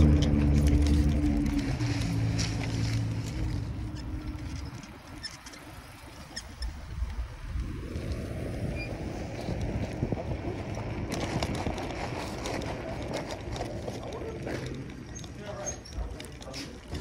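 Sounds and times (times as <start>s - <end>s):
low hum: 0.0s - 14.0s
wind on microphone: 0.0s - 14.1s
bike clicks and rattles: 0.0s - 17.0s
bike tyres rolling on asphalt: 0.0s - 17.0s.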